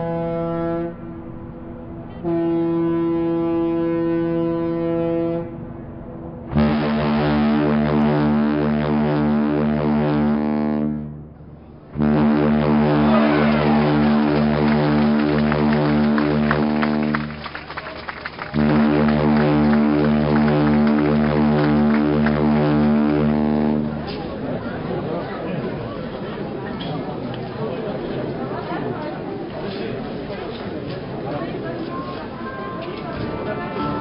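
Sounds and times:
ship's horn blasts: 0:00.0 - 0:05.8, 0:06.4 - 0:17.8, 0:18.4 - 0:24.6, 0:32.4 - 0:34.0.

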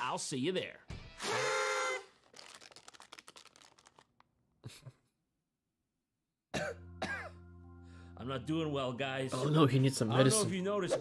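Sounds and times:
man coughing and groaning: 0:06.5 - 0:07.4, 0:10.3 - 0:11.0.

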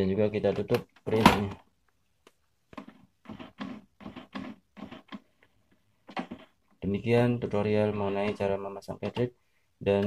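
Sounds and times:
printer mechanism pulses: 0:02.8 - 0:05.3, 0:07.2 - 0:09.3.

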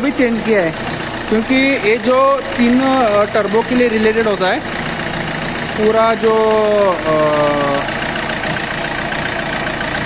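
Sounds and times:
diesel engine idling: 0:00.0 - 0:10.0.

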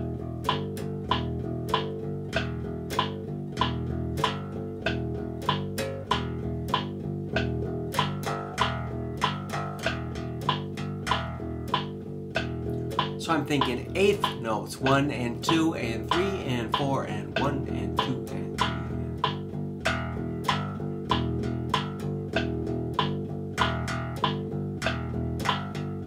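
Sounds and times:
electric bass guitar plucked: 0:00.0 - 0:26.0
metronome clicks: 0:00.0 - 0:26.0.

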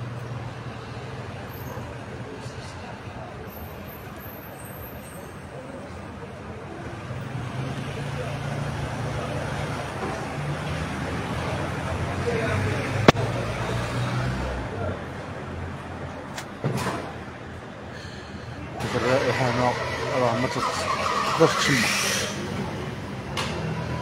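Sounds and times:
car passing: 0:18.0 - 0:24.0.

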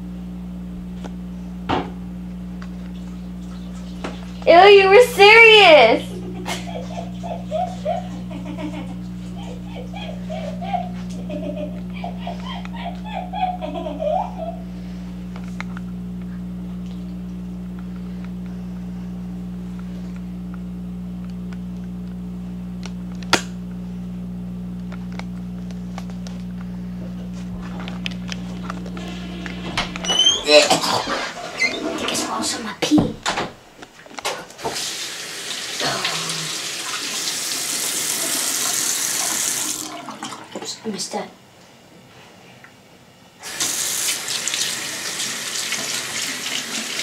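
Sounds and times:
low electrical hum: 0:00.0 - 0:47.0
voices: 0:04.4 - 0:08.2
faucet turned on: 0:34.6 - 0:40.5, 0:43.4 - 0:47.0
tap water running into basin: 0:34.6 - 0:40.8, 0:43.4 - 0:47.0.

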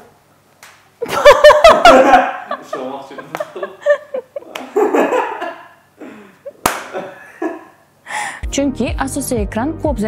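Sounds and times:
woman laughing softly: 0:01.0 - 0:05.4
sharp slap: 0:06.6 - 0:07.0.

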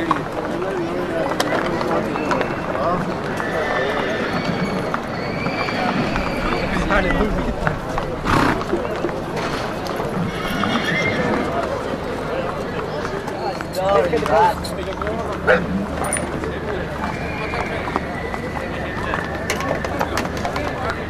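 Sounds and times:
crowd talking: 0:00.0 - 0:21.0
horse whinnying: 0:02.5 - 0:07.0, 0:10.1 - 0:11.6
loud rush of noise: 0:05.3 - 0:11.5.

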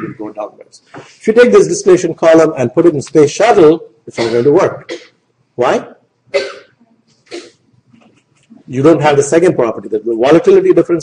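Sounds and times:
person coughing: 0:04.1 - 0:05.2, 0:06.4 - 0:07.6.

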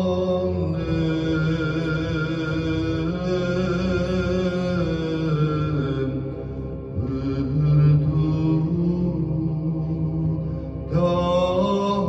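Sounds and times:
man chanting a hymn over loudspeaker: 0:00.0 - 0:12.0.

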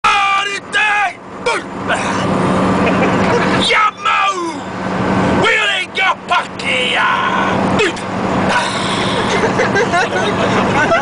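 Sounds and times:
man shouting a chant: 0:00.0 - 0:01.7, 0:03.6 - 0:04.6, 0:05.4 - 0:08.1
bus engine hum: 0:00.0 - 0:11.0.

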